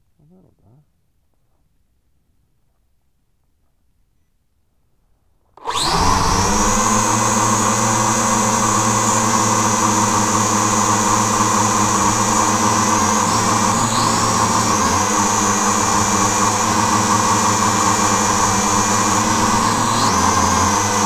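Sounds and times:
drone motors and propellers whining: 5.6s - 21.0s.

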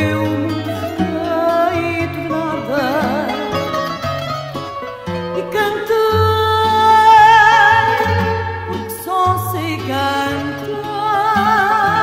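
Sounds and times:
woman singing with vibrato: 0.0s - 4.1s, 5.2s - 12.0s
plucked string accompaniment: 0.0s - 12.0s.

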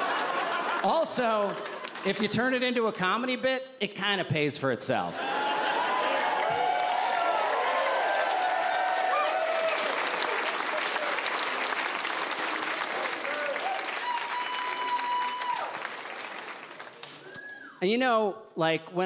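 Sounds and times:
audience applauding and cheering: 0.0s - 2.5s, 5.2s - 17.8s
whoops from crowd: 5.2s - 10.4s, 13.4s - 15.9s, 17.2s - 17.8s.

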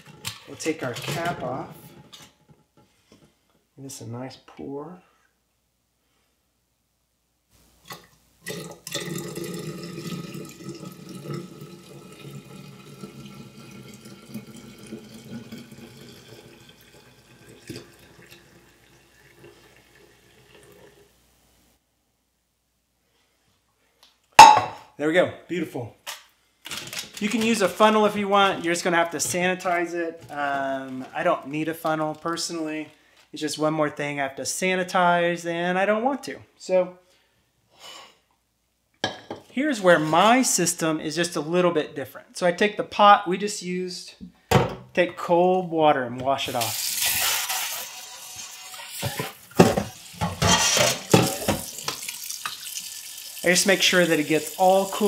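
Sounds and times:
faucet water splashing into pot: 7.9s - 21.1s, 46.4s - 55.0s
metal pot clanking on stone: 24.4s - 24.8s, 49.0s - 52.0s
sharp knock of pot: 24.4s - 24.8s.

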